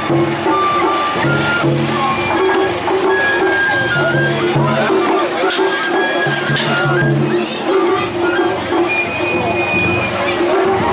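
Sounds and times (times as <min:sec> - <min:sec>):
crowd voices: 0:00.0 - 0:10.9
high flute notes: 0:00.0 - 0:10.9.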